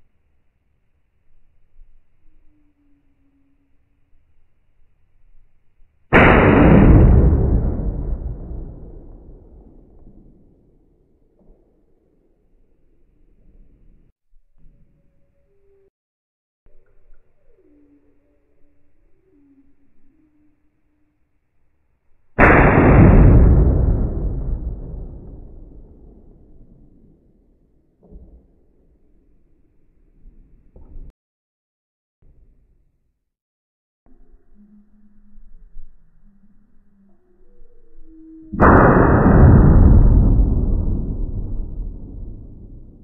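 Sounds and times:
slow motion rifle shot: 0:06.1 - 0:12.6, 0:22.4 - 0:29.3, 0:38.5 - 0:43.0
faint low wavering tones: 0:34.1 - 0:38.6.

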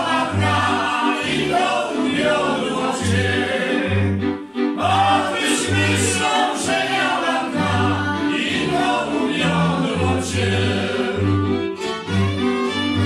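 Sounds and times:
men singing: 0:00.0 - 0:11.4
fiddles playing: 0:00.0 - 0:13.0.

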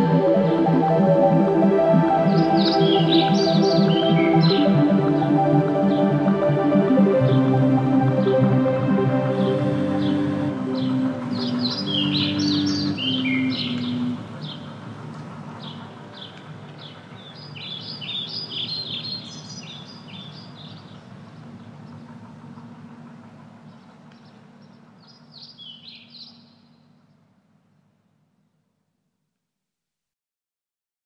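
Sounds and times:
birds chirping: 0:00.0 - 0:27.2
held low music chords: 0:00.0 - 0:27.2
low steady hum: 0:00.0 - 0:28.8.

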